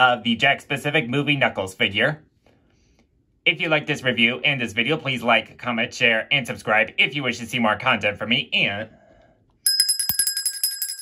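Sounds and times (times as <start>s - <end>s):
bell trilling: 9.7s - 11.0s.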